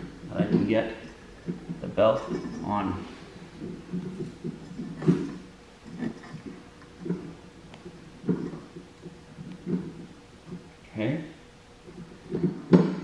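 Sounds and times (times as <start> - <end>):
belt and pulley knocking and rubbing: 0.0 - 10.8, 11.8 - 13.0.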